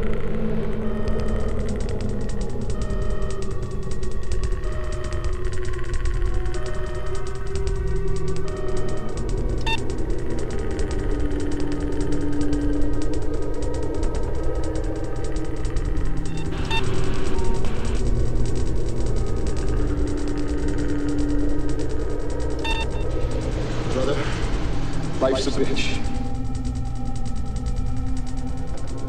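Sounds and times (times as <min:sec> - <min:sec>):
electronic background music: 0:00.0 - 0:29.0.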